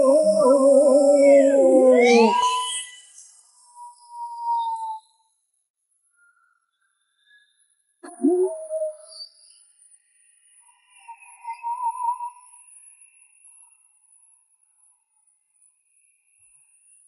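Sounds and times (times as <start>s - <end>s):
wavering tone: 0.0s - 2.9s, 8.1s - 9.0s.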